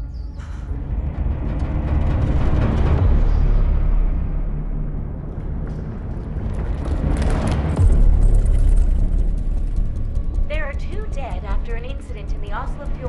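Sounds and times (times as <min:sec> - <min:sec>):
deep low rumble: 0:00.0 - 0:13.0
heavy low boom: 0:00.4 - 0:12.6.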